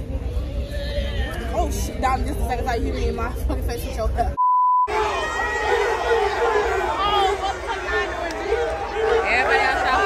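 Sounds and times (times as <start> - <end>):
voices talking: 0.5 - 10.0
censor bleep: 4.4 - 4.9.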